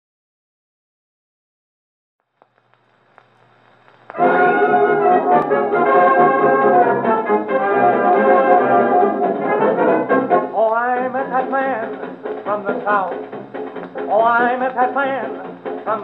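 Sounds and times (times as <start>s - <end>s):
record surface hiss: 2.2s - 16.0s
brass-led dance band music: 4.2s - 15.9s.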